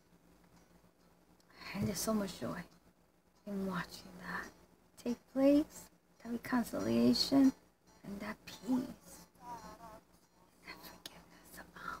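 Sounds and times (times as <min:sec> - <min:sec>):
woman whispering: 0:10.6 - 0:12.0.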